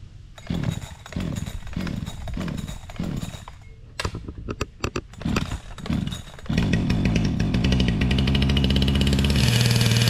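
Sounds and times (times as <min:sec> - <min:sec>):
chainsaw starter cord pulls: 0:00.4 - 0:03.6, 0:05.0 - 0:10.0
engine turning over whir: 0:00.4 - 0:03.6, 0:05.1 - 0:10.0.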